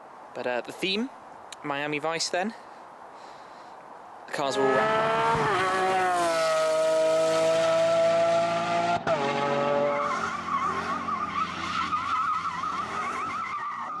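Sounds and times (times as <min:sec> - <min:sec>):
sports car engine revving: 0:04.6 - 0:13.9.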